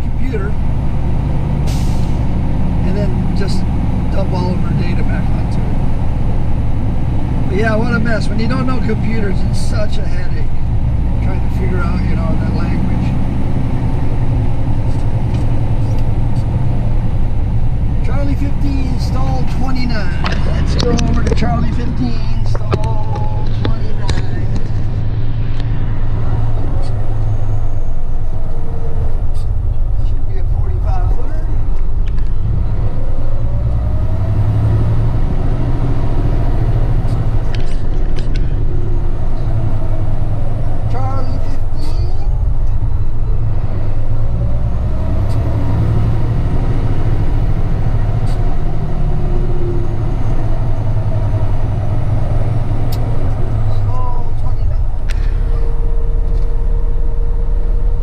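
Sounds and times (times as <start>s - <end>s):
truck engine running: 0.0s - 58.0s.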